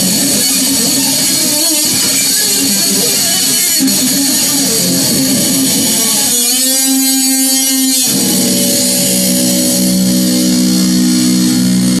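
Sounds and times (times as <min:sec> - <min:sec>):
distorted electric guitar notes: 0:00.0 - 0:12.0.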